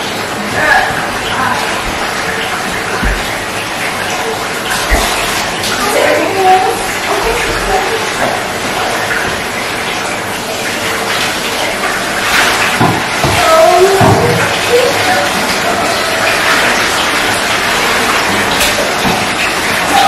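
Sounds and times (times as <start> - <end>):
water running into bathtub: 0.0 - 20.0.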